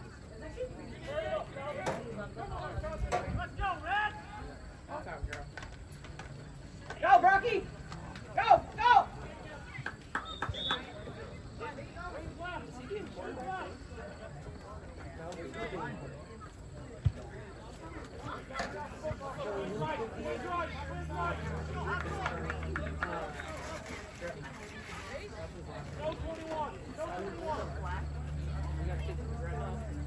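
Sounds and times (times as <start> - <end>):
background chatter: 0.0 - 30.0.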